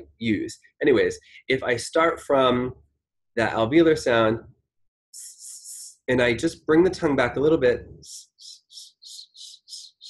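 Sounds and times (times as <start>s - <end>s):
man hissing whistly s sounds: 8.1s - 10.0s.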